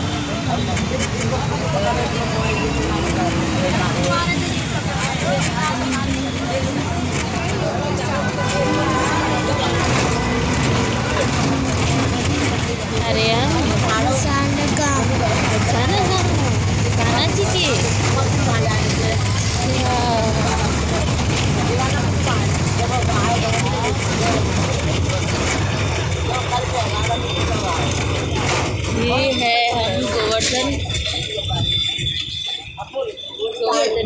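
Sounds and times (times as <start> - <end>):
vehicle engine rumble: 0.0 - 33.6
indistinct voices: 0.0 - 34.0
road noise: 0.0 - 34.0.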